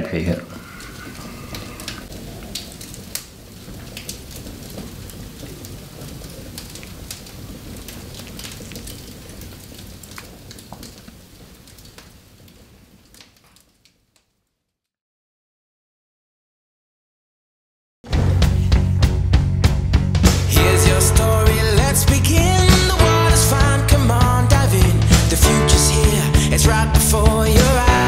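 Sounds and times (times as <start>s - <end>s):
wood fire crackling and popping: 0.0s - 14.6s, 19.9s - 28.0s.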